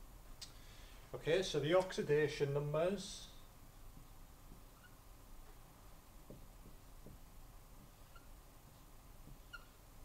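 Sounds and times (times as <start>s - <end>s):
marker squeaking on whiteboard: 4.5s - 5.1s, 7.8s - 9.9s.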